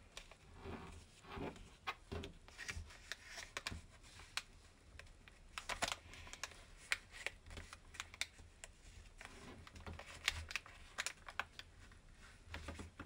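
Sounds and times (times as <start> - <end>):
paper rustling and crackling: 5.4 - 13.0.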